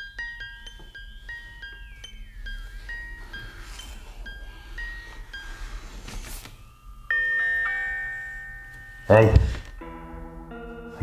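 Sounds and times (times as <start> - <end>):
bell-like chime: 0.0 - 6.0, 6.6 - 11.0.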